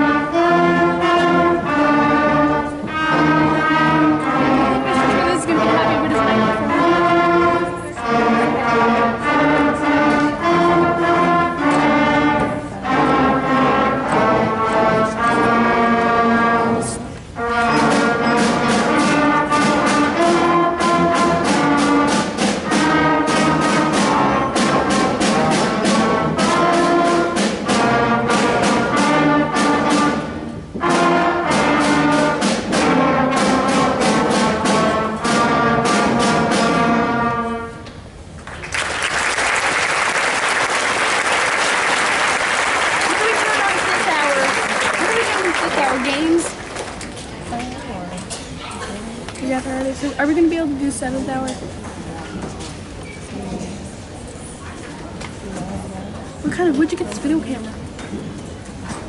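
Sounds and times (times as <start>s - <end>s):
concert band playing: 0.0s - 47.5s
audience applause: 38.4s - 47.0s.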